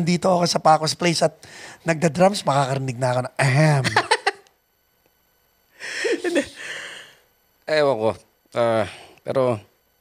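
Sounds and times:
man's breathy laughter: 5.8s - 6.9s.

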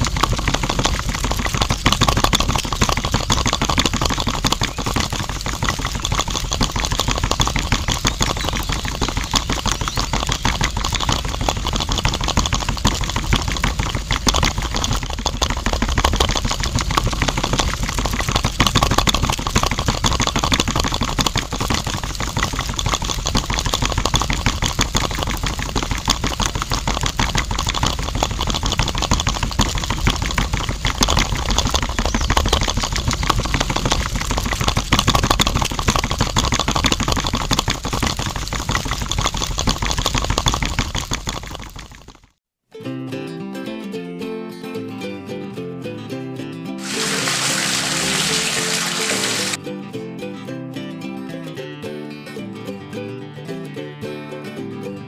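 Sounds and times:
toy motor rattling buzz: 46.8s - 49.6s.

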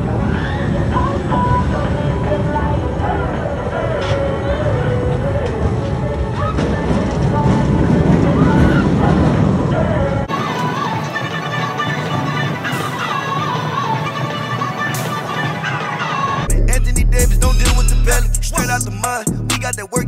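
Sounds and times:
roller coaster rumbling: 0.0s - 19.2s
music: 0.0s - 20.0s
voices: 0.3s - 20.0s.

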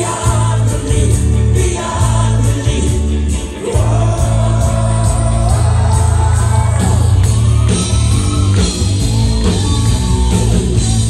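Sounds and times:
man singing lead vocal: 0.0s - 7.0s
drums with cymbals: 0.0s - 11.0s
electric guitar: 0.0s - 11.0s
heavy bass line: 0.0s - 11.0s.

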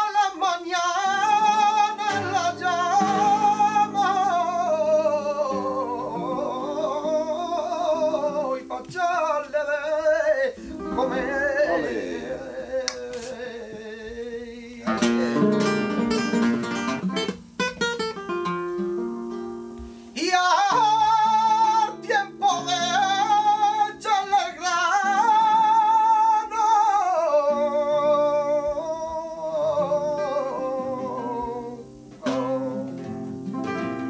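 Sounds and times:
flamenco guitars playing: 0.0s - 34.0s
man singing wavering line: 10.9s - 12.9s.

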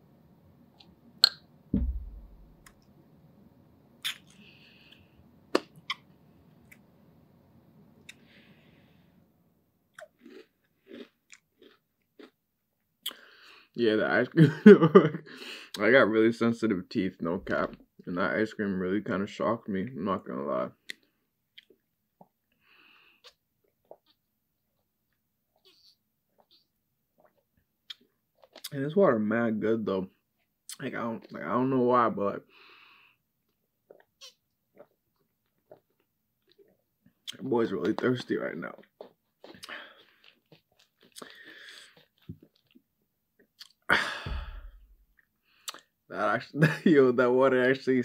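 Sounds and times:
person chewing softly: 8.0s - 8.4s, 9.9s - 12.4s, 20.8s - 28.8s, 32.9s - 38.1s, 38.7s - 43.9s, 45.2s - 46.0s.

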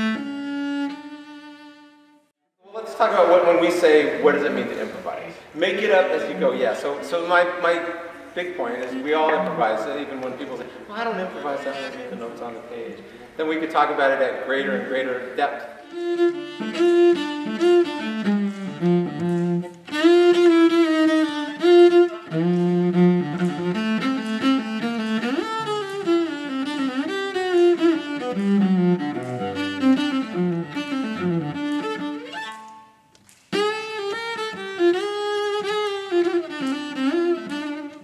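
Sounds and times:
bowed cello melody: 0.0s - 2.3s, 5.7s - 12.4s, 15.8s - 38.0s.

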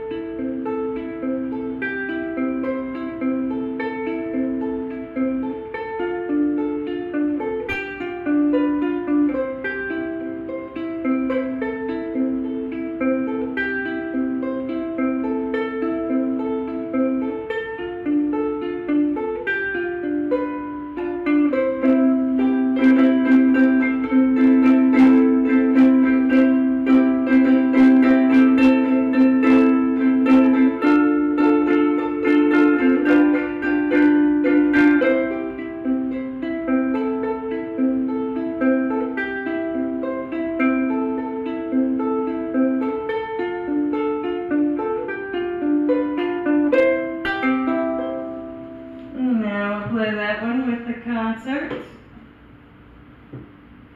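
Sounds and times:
ukulele playing: 0.0s - 49.9s, 51.6s - 53.9s.

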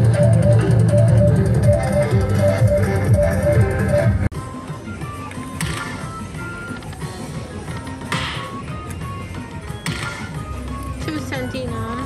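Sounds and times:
electronic slot machine music: 0.0s - 12.0s.

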